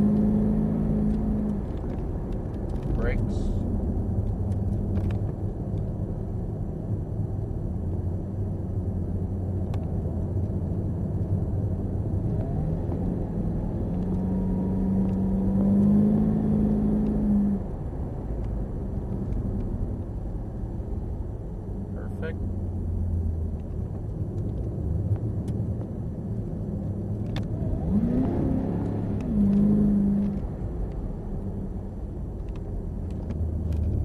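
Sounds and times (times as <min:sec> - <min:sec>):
car engine at speed from cabin: 0:00.0 - 0:34.0.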